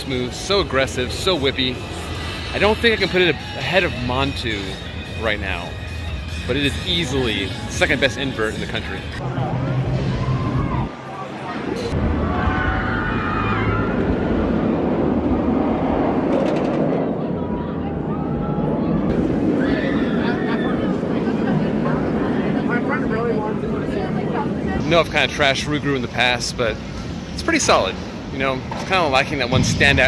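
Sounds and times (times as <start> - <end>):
roller coaster train running: 0.0 - 30.0
people's voices: 16.5 - 30.0.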